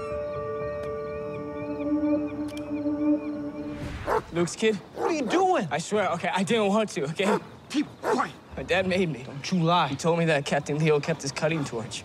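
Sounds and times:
sustained synth notes: 0:00.0 - 0:03.8.

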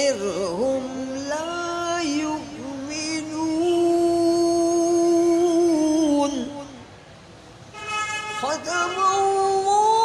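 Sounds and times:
man chanting recitation: 0:08.4 - 0:10.0.

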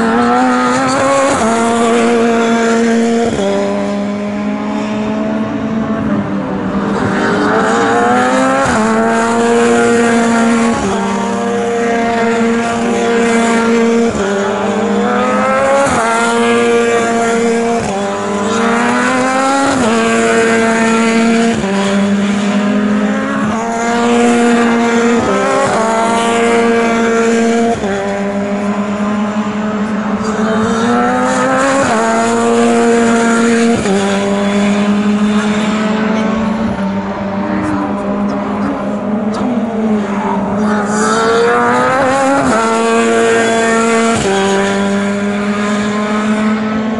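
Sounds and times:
racing car engines revving: 0:00.0 - 0:46.9.

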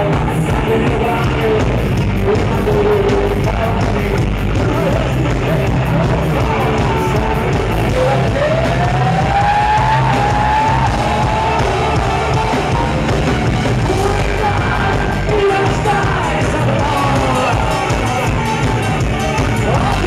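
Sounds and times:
person singing: 0:00.0 - 0:13.0, 0:13.6 - 0:20.0
drums: 0:00.0 - 0:20.0
electric guitars: 0:00.0 - 0:20.0
live rock band playing: 0:00.0 - 0:20.0.

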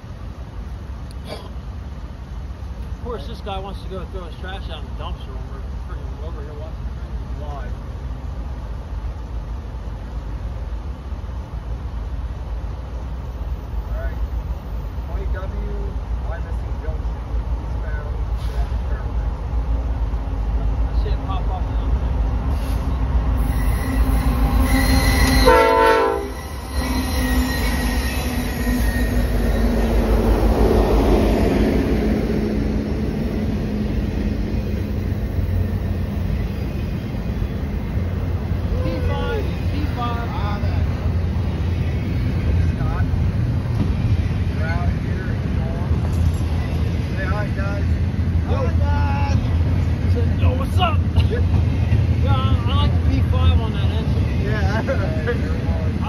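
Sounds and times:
freight train rumbling on rails: 0:00.0 - 0:56.0
train wheel squeals: 0:22.5 - 0:30.7
train horn: 0:23.5 - 0:29.5.

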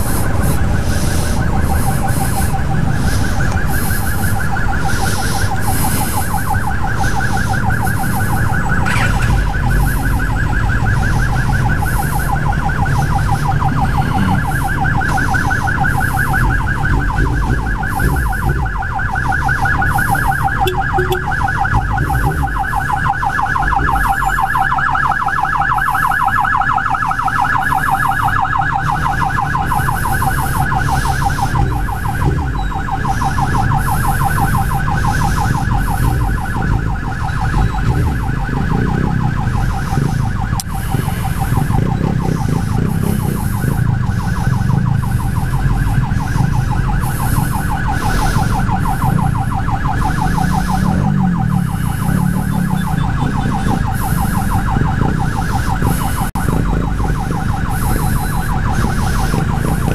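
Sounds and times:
ambulance siren warbling: 0:00.0 - 0:59.9
low rumble of traffic: 0:00.0 - 0:59.9.

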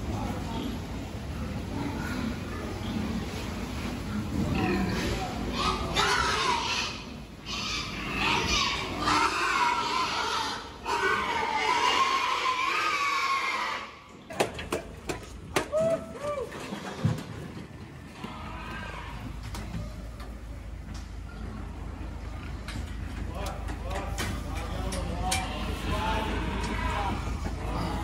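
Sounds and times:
pigs squealing: 0:04.4 - 0:14.1.

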